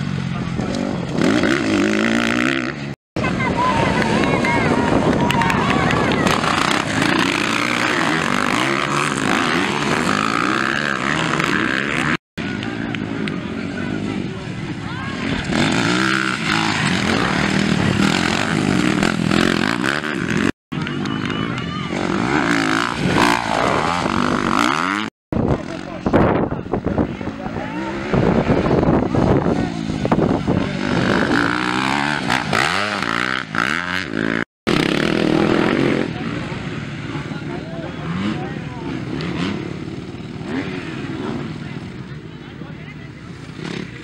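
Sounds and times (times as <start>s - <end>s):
dirt bike engines revving: 0.0s - 44.0s.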